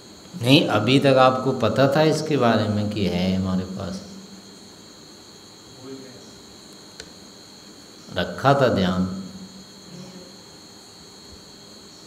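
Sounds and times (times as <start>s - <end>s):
crickets trilling: 0.0s - 12.0s
low background hiss: 0.0s - 12.0s.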